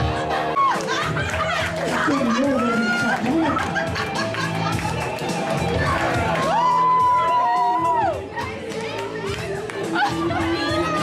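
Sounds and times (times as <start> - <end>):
crowd voices with children: 0.0 - 11.0
dance music with beat: 0.6 - 11.0.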